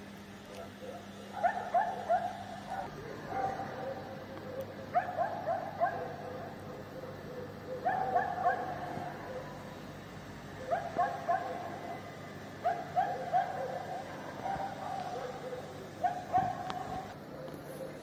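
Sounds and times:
dog barking: 0.5 - 9.7, 10.5 - 12.0, 12.6 - 18.0.

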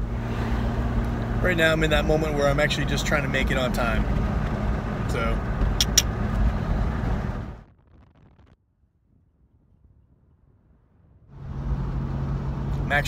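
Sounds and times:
car road and engine rumble: 0.0 - 8.4, 11.2 - 13.0.

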